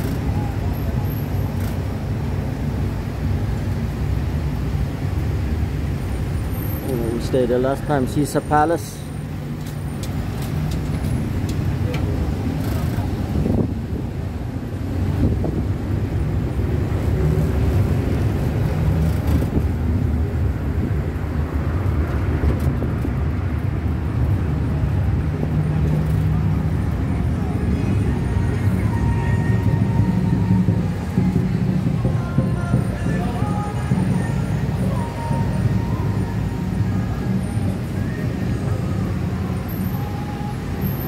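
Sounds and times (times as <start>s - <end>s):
road noise: 0.0s - 41.0s
vehicle engine rumble: 0.0s - 41.0s.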